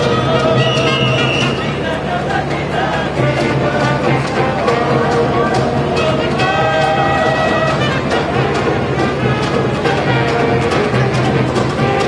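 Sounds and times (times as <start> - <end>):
brass band playing upbeat tune: 0.0 - 12.0.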